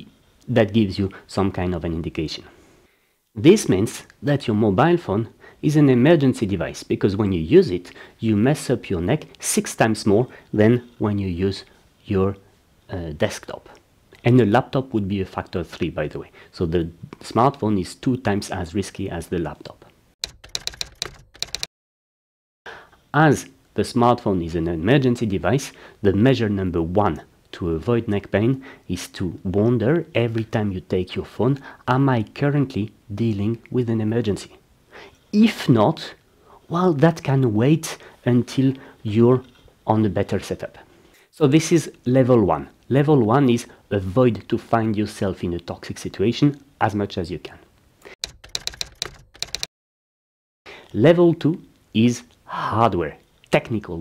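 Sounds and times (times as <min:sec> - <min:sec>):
typewriter key clacks: 0:20.2 - 0:21.7, 0:48.2 - 0:49.7.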